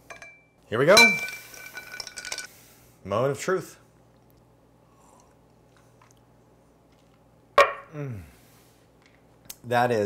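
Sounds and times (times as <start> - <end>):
glassware clinking: 0.0 - 2.5
struck glass ringing: 0.1 - 2.4.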